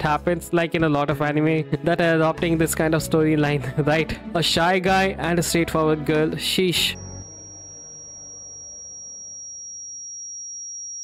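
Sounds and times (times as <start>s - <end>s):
faint background music: 0.0s - 7.4s
high-pitched sine tone: 6.8s - 11.0s.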